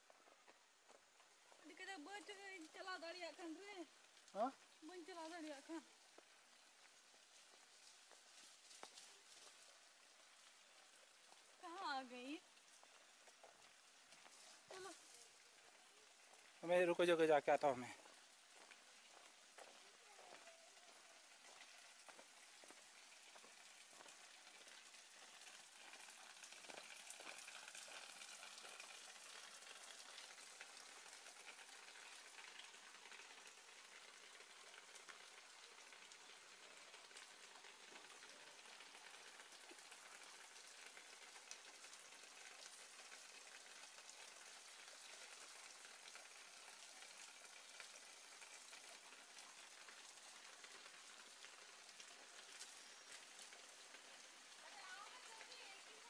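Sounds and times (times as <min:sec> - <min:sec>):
faint crackling hiss: 0:00.0 - 0:56.0.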